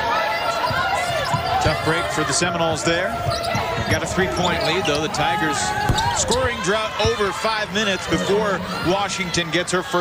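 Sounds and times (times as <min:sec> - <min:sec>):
basketball bouncing on hardwood: 0:05.8 - 0:07.2.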